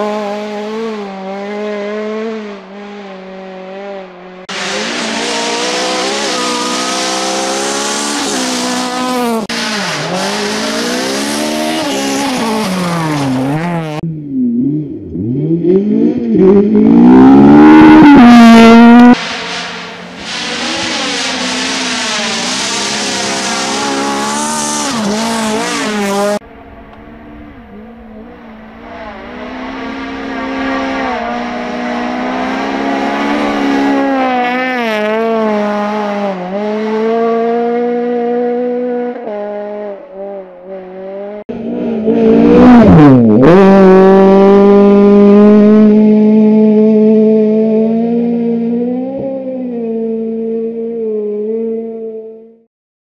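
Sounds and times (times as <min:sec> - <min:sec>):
rally car engine at high revs: 0:00.0 - 0:26.4, 0:27.2 - 0:52.7.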